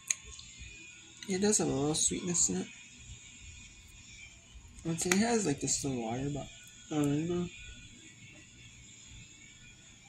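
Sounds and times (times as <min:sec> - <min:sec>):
man's voice: 0:01.2 - 0:02.7, 0:04.8 - 0:07.6.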